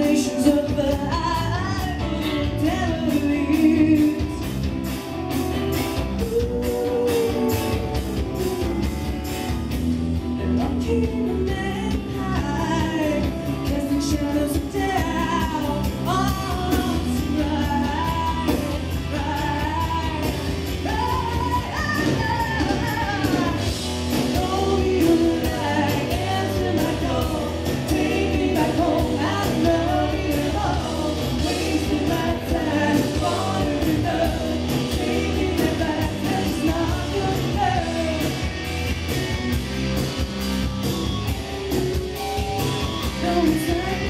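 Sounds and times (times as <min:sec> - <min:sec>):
woman singing: 0:00.0 - 0:04.7, 0:06.0 - 0:09.2, 0:10.4 - 0:38.6, 0:43.0 - 0:44.0
bass guitar: 0:00.0 - 0:44.0
drums: 0:00.0 - 0:44.0
electric guitars: 0:00.0 - 0:44.0.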